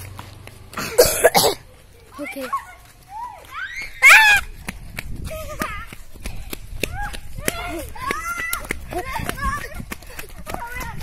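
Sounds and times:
person coughing: 0.8s - 1.6s.

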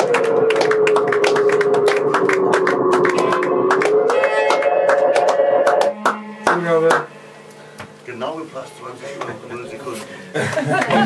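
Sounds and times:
sustained tone sliding lower: 0.0s - 7.8s.

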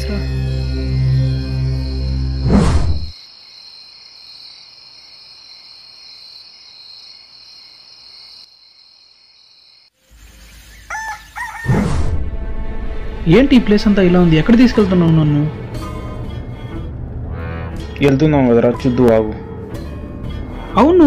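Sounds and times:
night insects chirring: 0.0s - 11.7s
rooster crowing: 10.7s - 11.9s.

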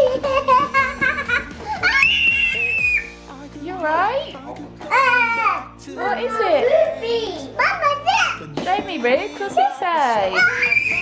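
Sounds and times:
girl squealing: 1.8s - 3.1s, 10.3s - 11.0s.

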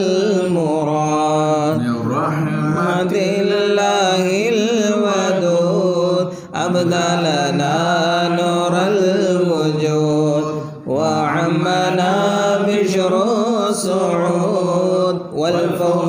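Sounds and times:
voices chanting melodic verses: 0.0s - 16.0s.

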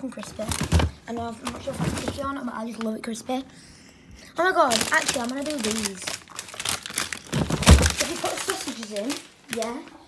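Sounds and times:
plastic packaging crinkling: 4.4s - 10.0s.

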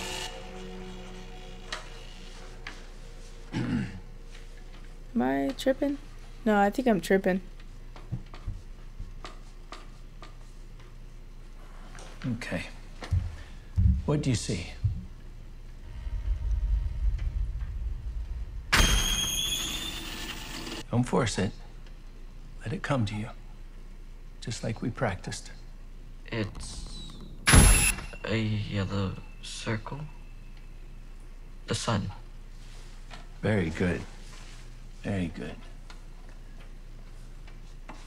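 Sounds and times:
low steady soundtrack drone: 0.0s - 6.4s, 15.8s - 20.8s
person clearing throat: 3.5s - 4.0s
low rumbling drone: 15.1s - 20.8s
high steady whine: 15.8s - 20.8s
hissing whoosh: 15.8s - 20.8s.

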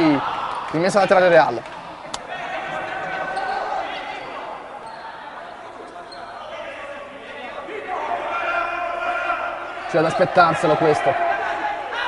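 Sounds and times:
indistinct shouting in sports hall: 0.0s - 12.0s
shoe squeaks on wooden court: 3.2s - 5.2s, 5.8s - 6.4s.

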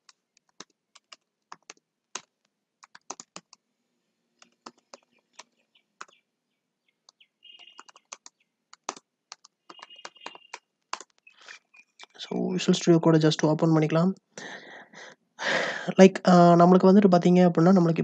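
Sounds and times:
keyboard typing: 0.0s - 3.6s, 4.4s - 6.2s, 7.0s - 12.2s.

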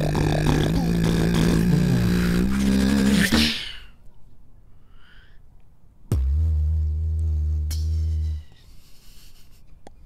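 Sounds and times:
beatboxing into microphones: 0.0s - 3.8s.

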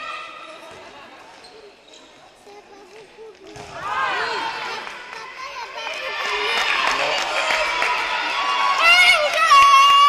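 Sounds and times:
voices of players and spectators: 0.0s - 10.0s
ball bouncing on hall floor: 2.9s - 4.0s.

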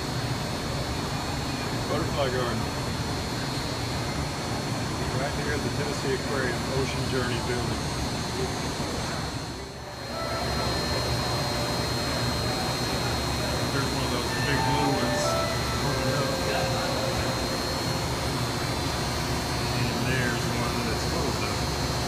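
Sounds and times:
low hum of air handling: 2.3s - 22.0s
thin high whine: 9.8s - 21.7s.

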